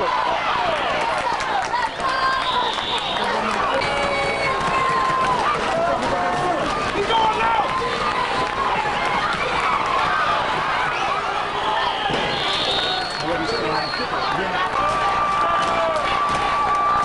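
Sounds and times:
crowd talking and calling out: 0.0 - 17.0.

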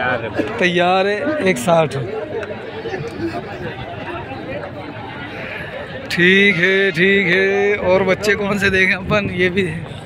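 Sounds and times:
men talking in a babble: 0.0 - 10.0.

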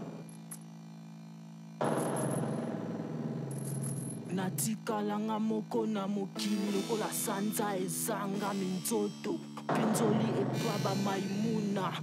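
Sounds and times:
low synthesizer tone: 1.0 - 12.0.

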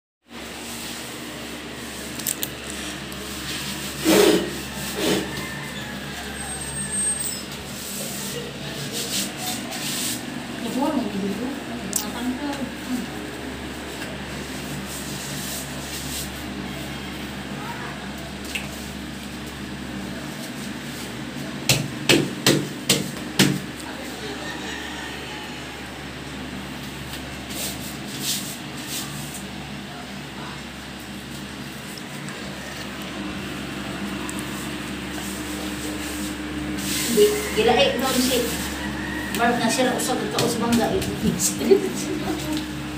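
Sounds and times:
hand scrubbing on floor: 0.5 - 11.6, 12.8 - 17.0, 27.0 - 29.6, 33.4 - 42.9
loud scrapes on floor: 2.8 - 10.3, 34.5 - 39.3.

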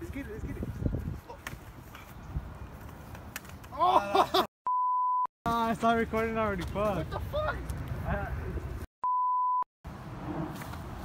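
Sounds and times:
outdoor background noise: 0.0 - 4.5, 5.5 - 8.9, 9.8 - 11.0
steady electronic beep: 4.7 - 5.3, 9.0 - 9.7.

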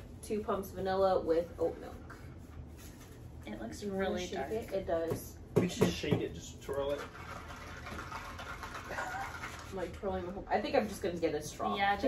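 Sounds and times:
drink sloshing in plastic cup: 6.9 - 9.9.

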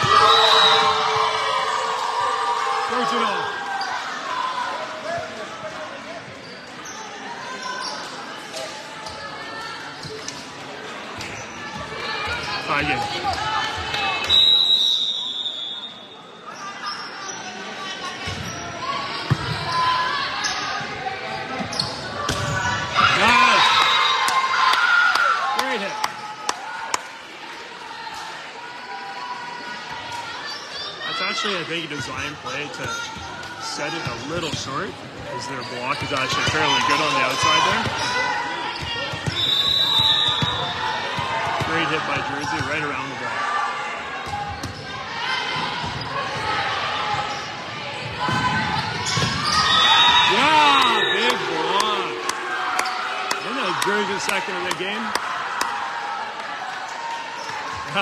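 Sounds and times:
voices talking and calling out: 28.1 - 58.0.

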